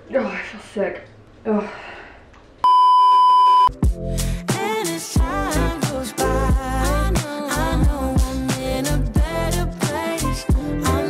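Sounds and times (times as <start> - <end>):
censor bleep: 2.6 - 3.8
music with deep bass: 3.7 - 11.0.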